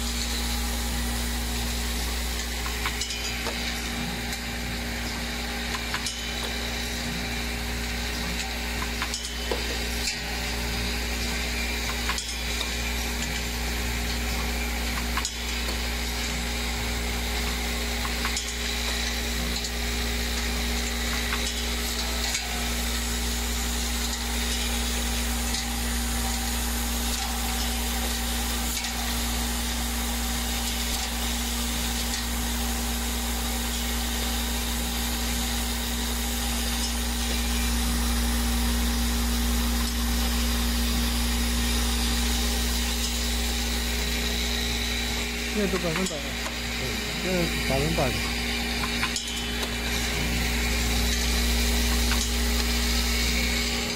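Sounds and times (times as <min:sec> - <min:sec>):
packing machine hum and hiss: 0:00.0 - 0:53.9.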